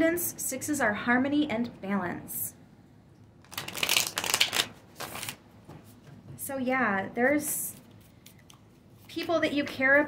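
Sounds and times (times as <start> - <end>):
cards being shuffled: 3.4 - 5.4.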